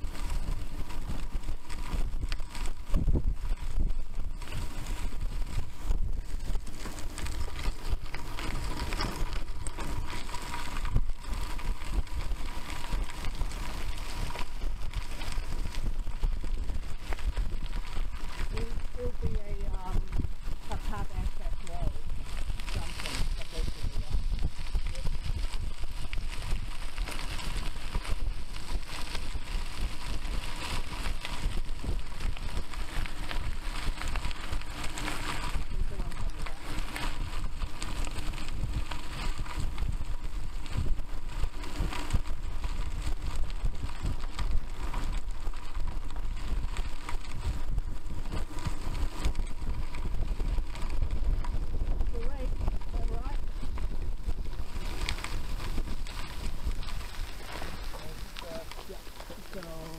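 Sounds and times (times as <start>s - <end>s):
bicycle tyres rolling on gravel: 0.0s - 59.9s
wind buffeting microphone: 0.0s - 59.9s.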